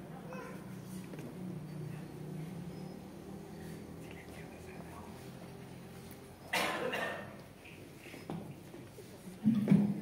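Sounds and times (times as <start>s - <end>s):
faint room hum: 0.0s - 10.0s
person coughing: 6.5s - 7.4s.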